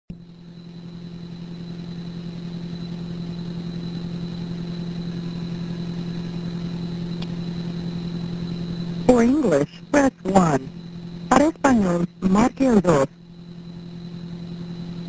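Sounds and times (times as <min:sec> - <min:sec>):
electrical hum on telephone line: 0:00.1 - 0:15.0
faint high whines: 0:00.1 - 0:15.0.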